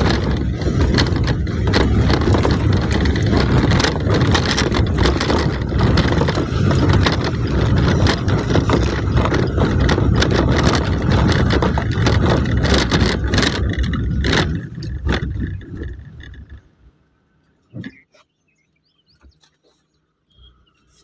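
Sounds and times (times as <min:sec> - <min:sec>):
rattles and knocks: 0:00.0 - 0:16.7
vehicle engine and road noise: 0:00.0 - 0:21.0.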